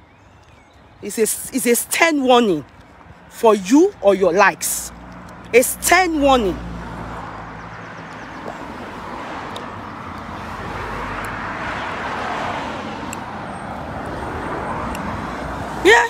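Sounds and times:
car passing: 0:01.1 - 0:16.0.

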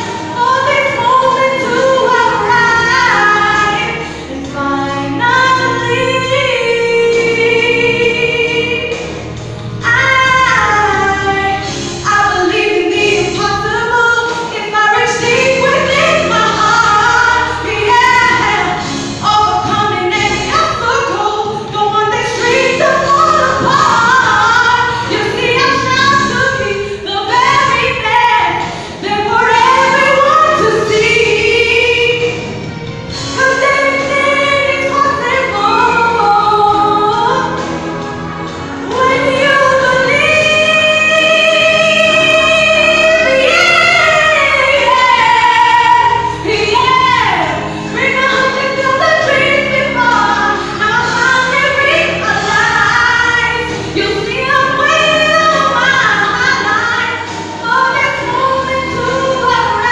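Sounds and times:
woman singing into microphone: 0:00.0 - 0:37.6, 0:38.8 - 0:59.9.

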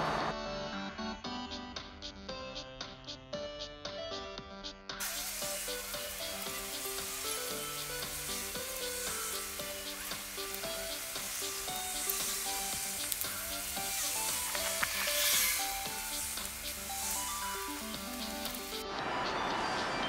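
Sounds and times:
background music: 0:00.0 - 0:20.0
chalk scraping on asphalt: 0:05.0 - 0:18.6.

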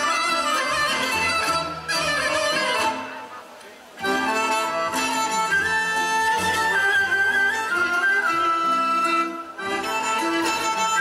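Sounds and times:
folk ensemble playing dance music: 0:00.0 - 0:11.0.

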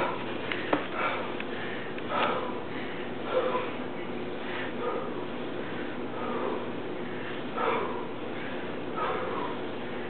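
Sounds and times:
man breathing hard through nose: 0:00.0 - 0:10.0.

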